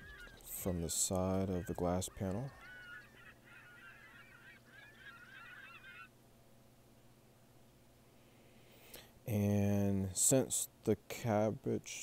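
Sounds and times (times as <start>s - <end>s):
chorus of bird calls: 0.0s - 6.2s
low steady hum: 0.0s - 12.0s.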